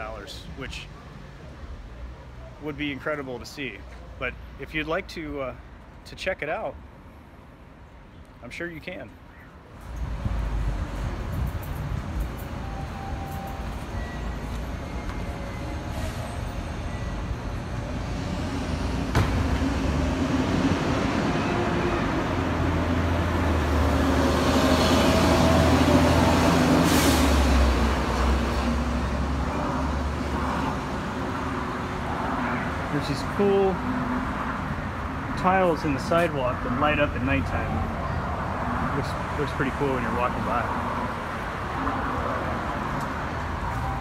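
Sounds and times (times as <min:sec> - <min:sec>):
street traffic: 0:00.0 - 0:44.0.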